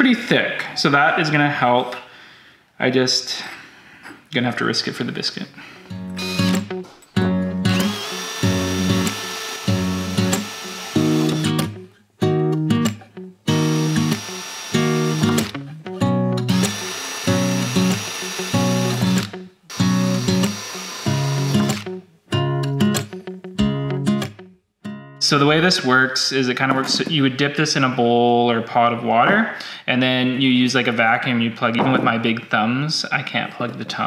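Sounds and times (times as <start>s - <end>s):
guitar music: 5.9s - 25.2s
drill whining through ceramic: 6.2s - 6.7s, 7.7s - 11.7s, 13.5s - 15.6s, 16.5s - 22.0s.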